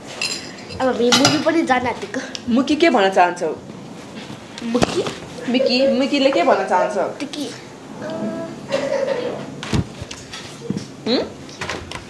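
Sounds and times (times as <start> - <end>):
voices: 4.6 - 9.6.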